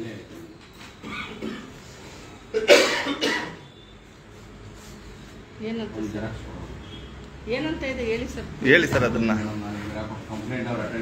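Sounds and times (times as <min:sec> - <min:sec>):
person coughing: 0:01.0 - 0:01.8, 0:02.5 - 0:03.6.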